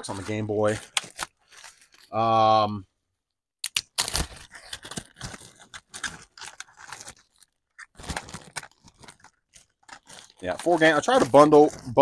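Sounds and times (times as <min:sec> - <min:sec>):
plastic packaging crinkling: 0:00.0 - 0:02.2, 0:03.8 - 0:12.0.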